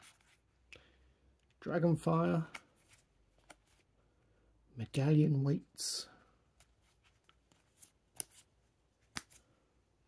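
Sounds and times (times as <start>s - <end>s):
trading cards rustling: 2.0s - 4.0s, 6.5s - 9.7s.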